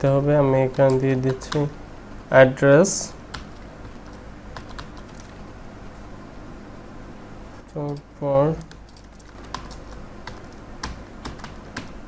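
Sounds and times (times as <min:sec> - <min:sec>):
faint low hum: 0:00.0 - 0:12.0
keyboard keystrokes: 0:03.3 - 0:05.4, 0:08.6 - 0:12.0.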